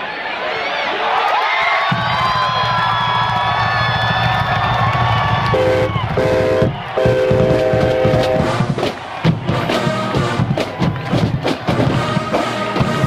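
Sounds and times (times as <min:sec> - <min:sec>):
stadium crowd cheering: 0:00.0 - 0:13.0
stacked music chords: 0:05.4 - 0:13.0.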